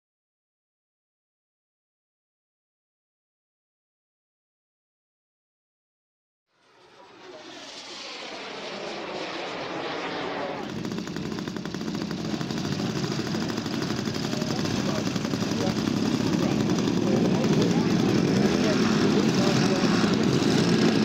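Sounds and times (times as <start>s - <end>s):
model plane engine rattling: 6.7s - 21.0s.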